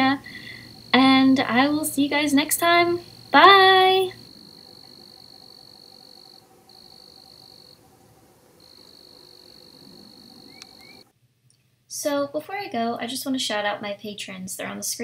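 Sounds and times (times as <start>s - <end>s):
faint low pulsing trill: 0.0s - 11.1s
insect trilling high-pitched: 0.0s - 11.1s.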